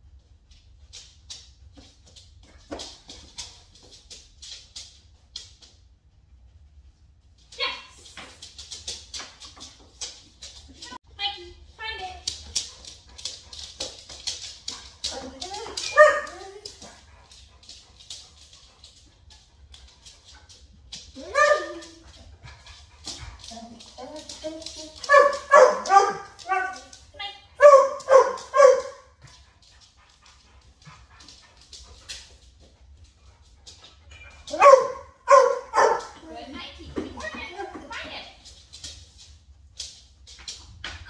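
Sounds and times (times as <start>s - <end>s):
dog barking: 15.9s - 16.4s, 21.3s - 21.9s, 25.1s - 26.8s, 27.6s - 29.1s, 34.5s - 36.2s.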